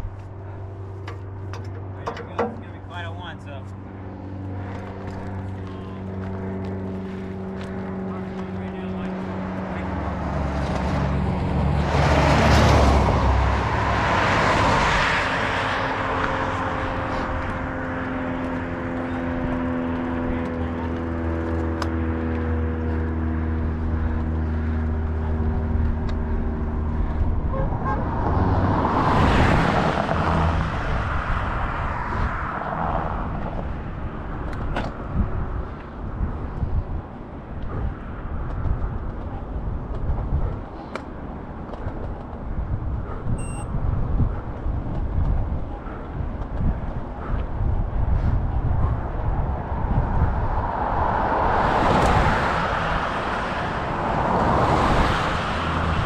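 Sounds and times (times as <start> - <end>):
steady engine drone: 0.0 - 56.0
vehicles passing on highway: 0.0 - 56.0.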